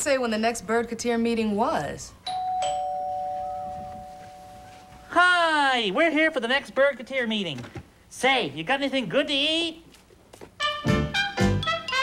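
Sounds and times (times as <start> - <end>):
two-note doorbell chime: 2.3 - 5.1.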